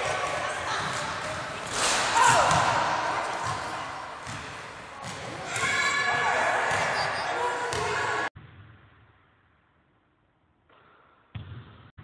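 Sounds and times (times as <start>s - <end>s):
basketballs bouncing on wooden floor: 3.4s - 5.8s.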